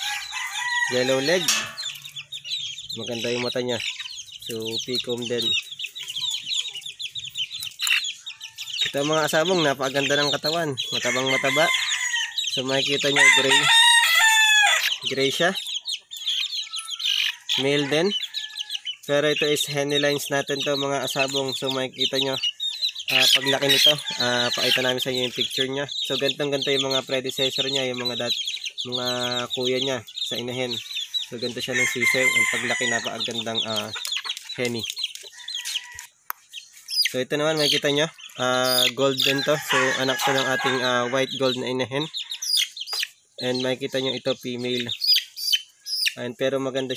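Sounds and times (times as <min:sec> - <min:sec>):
chicks peeping: 0:00.0 - 0:46.9.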